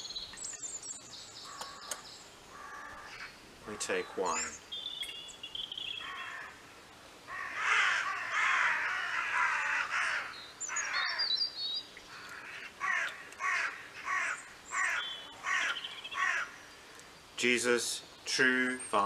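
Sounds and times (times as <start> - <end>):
small bird chirping: 0.0 - 3.4, 4.3 - 6.5, 10.3 - 12.4, 14.3 - 17.2
crows cawing: 1.4 - 4.5, 6.0 - 6.7, 7.3 - 11.4, 12.1 - 17.1.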